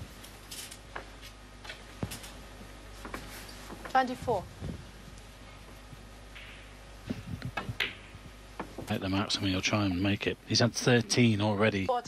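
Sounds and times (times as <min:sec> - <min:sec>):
snooker balls clicking: 0:07.4 - 0:09.0.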